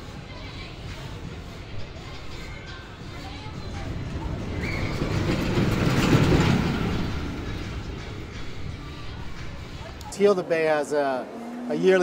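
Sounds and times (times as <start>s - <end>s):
roller coaster rumbling on track: 0.1s - 12.0s.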